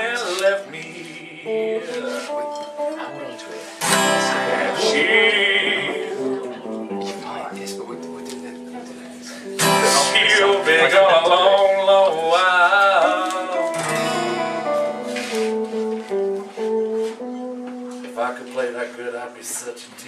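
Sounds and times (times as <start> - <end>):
person singing with vibrato: 0.0 - 2.9, 3.6 - 6.7, 9.6 - 15.3
strummed guitar chord: 0.0 - 18.9
picked guitar line: 0.0 - 20.0.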